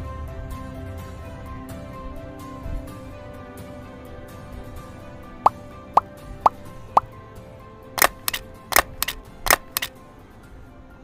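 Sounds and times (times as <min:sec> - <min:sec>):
soft background music: 0:00.0 - 0:11.0
sharp clicks and snaps: 0:08.0 - 0:09.9.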